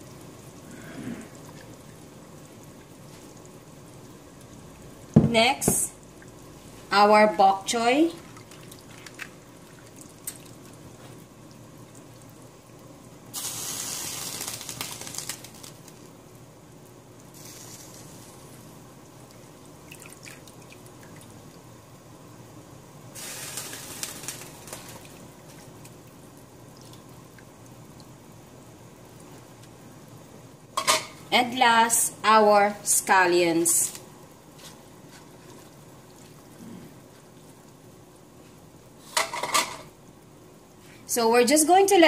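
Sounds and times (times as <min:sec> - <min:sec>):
broth bubbling in a pot: 0:00.0 - 0:42.0
vegetables splashing into pot: 0:13.3 - 0:16.1, 0:23.2 - 0:25.3.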